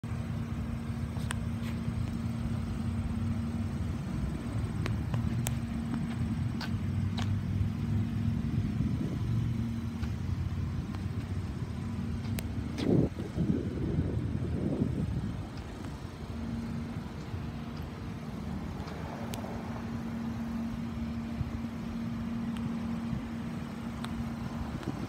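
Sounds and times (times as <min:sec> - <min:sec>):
car engine idling: 0:00.0 - 0:25.0.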